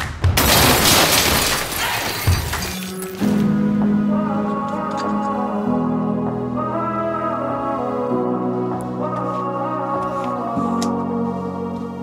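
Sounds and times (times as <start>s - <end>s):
glass shattering: 0.4s - 3.2s.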